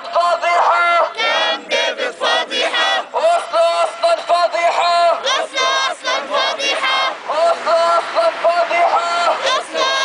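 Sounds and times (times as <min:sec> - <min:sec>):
boy chanting slogans: 0:00.0 - 0:10.0
crowd chanting: 0:00.0 - 0:10.0.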